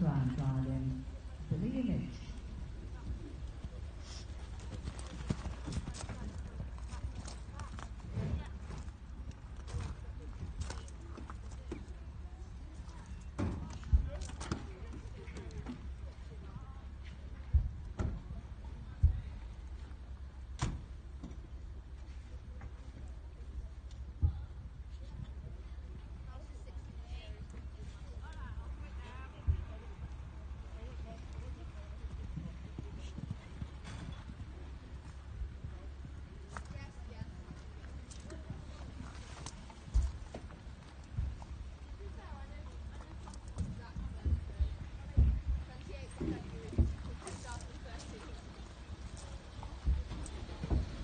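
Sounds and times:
horse hooves thudding on sand: 0.2 - 51.0.

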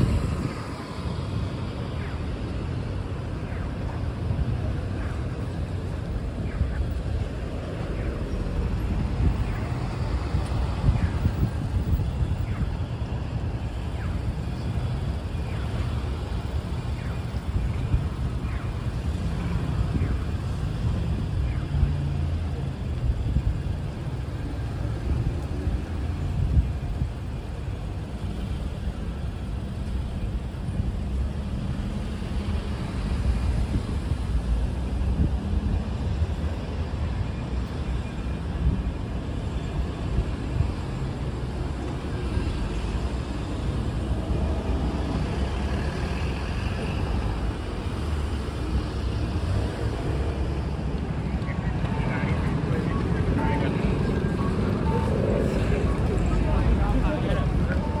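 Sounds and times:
cars passing on street: 0.0 - 58.0.

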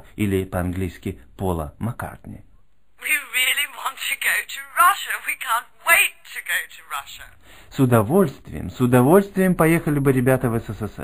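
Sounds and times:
person speaking: 3.0 - 9.3.

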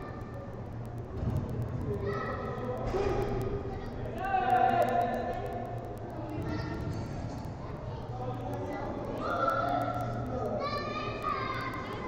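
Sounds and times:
steady low hum: 0.0 - 12.0
voices calling and shouting: 0.0 - 12.0.

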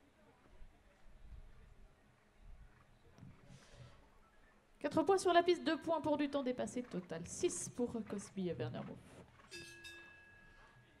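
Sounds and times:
faint metallic bell ring: 9.5 - 11.0.

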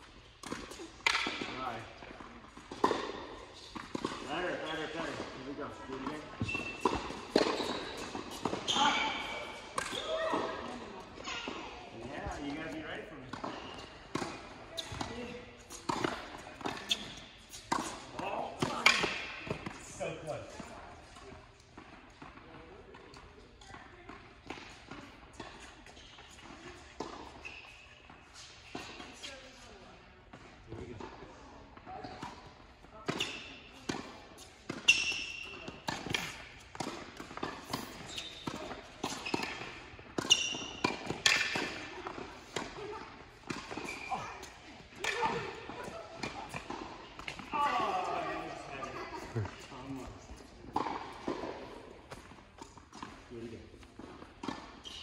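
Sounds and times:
tennis balls struck and bouncing: 0.4 - 29.3, 30.3 - 55.0.

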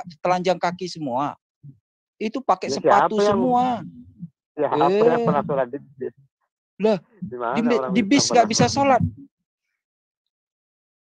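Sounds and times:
man's voice: 2.2 - 4.0, 4.6 - 6.2, 6.8 - 9.2.

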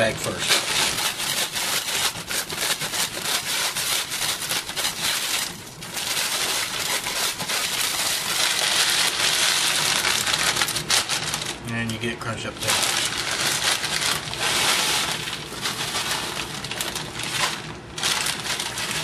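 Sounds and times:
chips crunching in plastic bag: 0.0 - 19.0.

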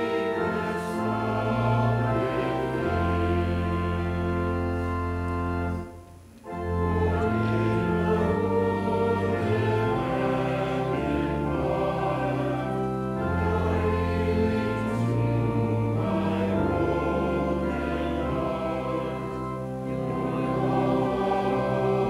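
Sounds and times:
congregation singing a hymn: 0.0 - 22.0
organ playing: 0.0 - 22.0.

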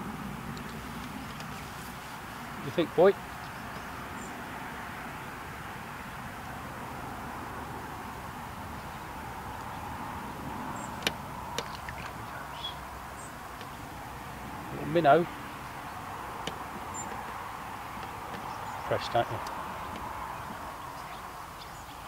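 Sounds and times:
outdoor background hiss: 0.0 - 22.0
sharp small clicks: 11.0 - 12.2.

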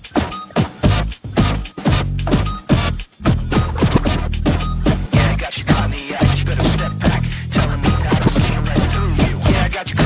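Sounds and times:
turntable scratching: 0.0 - 10.0
bass line: 0.8 - 10.0.

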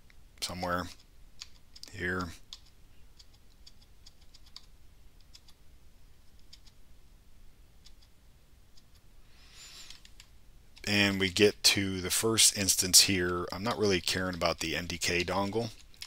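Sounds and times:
computer keyboard key presses: 2.5 - 5.6
short soft hiss: 9.3 - 10.1.

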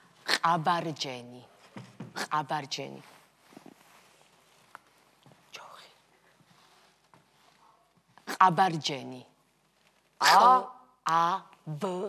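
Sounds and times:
person whispering: 0.2 - 1.5, 5.4 - 6.4.

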